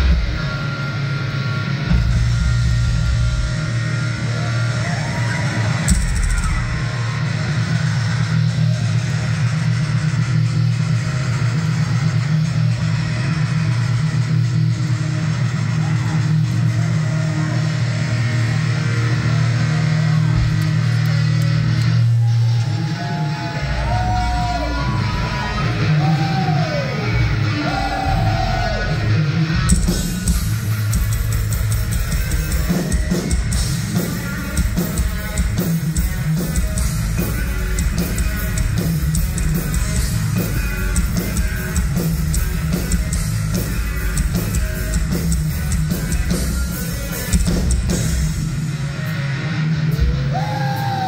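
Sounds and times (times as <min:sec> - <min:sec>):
drum kit: 0:00.0 - 0:23.1, 0:23.8 - 0:51.0
distorted electric guitars: 0:00.0 - 0:51.0.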